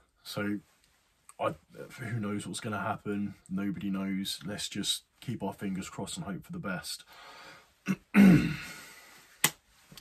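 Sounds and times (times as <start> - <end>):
man clearing his throat: 7.9 - 8.8.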